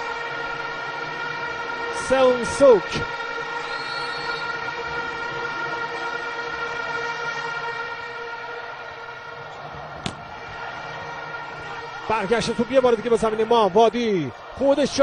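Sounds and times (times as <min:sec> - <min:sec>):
crowd blowing stadium horns: 0:00.0 - 0:15.0.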